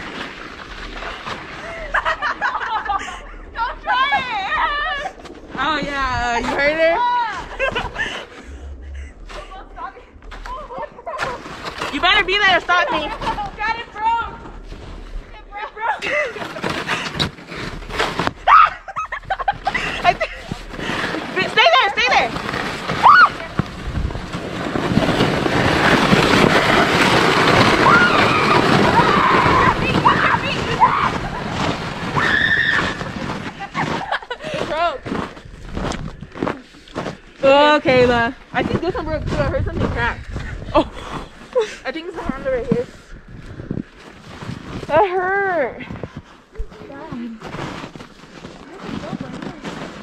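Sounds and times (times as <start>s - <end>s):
sled scraping over snow: 0.0s - 50.0s
people exclaiming: 18.4s - 19.1s
children shrieking and laughing: 18.4s - 20.3s, 27.8s - 34.4s.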